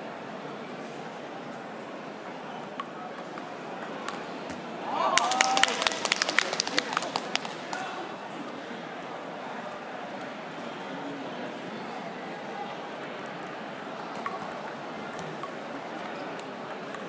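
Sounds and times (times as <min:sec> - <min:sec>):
sports hall murmur: 0:00.0 - 0:17.0
hand clapping: 0:05.2 - 0:07.9.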